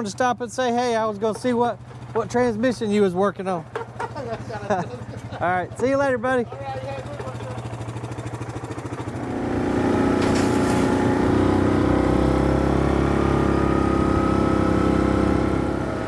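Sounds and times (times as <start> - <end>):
atv engine running: 0.0 - 16.0.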